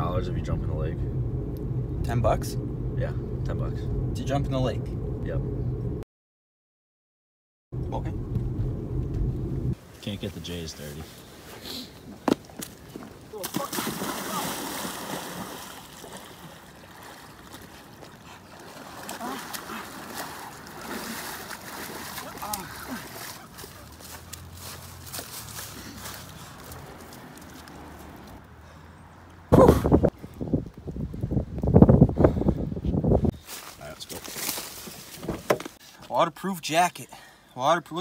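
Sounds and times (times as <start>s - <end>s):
water splashing around legs: 12.6s - 28.4s.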